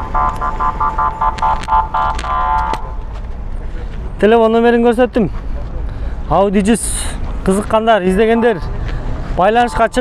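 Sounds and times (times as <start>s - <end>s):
car alarm rapid beeps: 0.0s - 2.8s.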